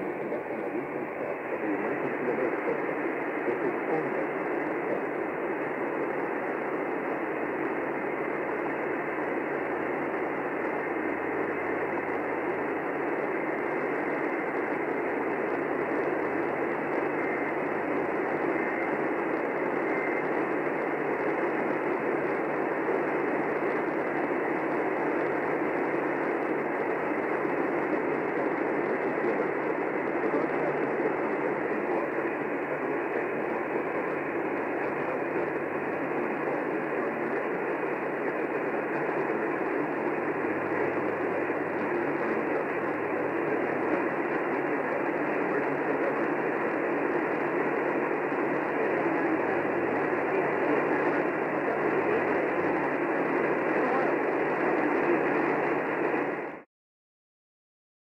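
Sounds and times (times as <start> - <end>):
radio static hiss: 0.0 - 56.7.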